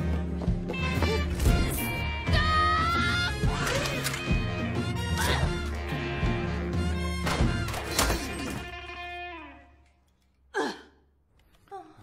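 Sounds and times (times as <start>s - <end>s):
woman groaning in pain: 10.5s - 11.0s.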